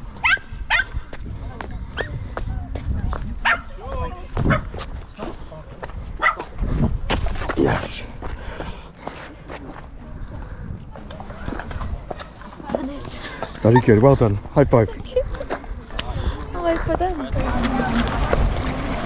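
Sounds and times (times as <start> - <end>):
wind rumbling on microphone: 0.0 - 8.8, 9.6 - 13.2, 14.2 - 19.0.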